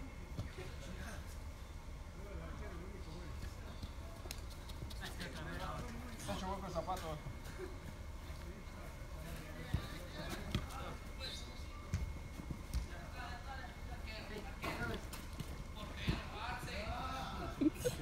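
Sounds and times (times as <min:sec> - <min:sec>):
players running on turf: 0:03.3 - 0:13.4, 0:14.3 - 0:18.0
soccer ball kicks: 0:09.7 - 0:11.0, 0:11.8 - 0:13.0, 0:15.4 - 0:16.4.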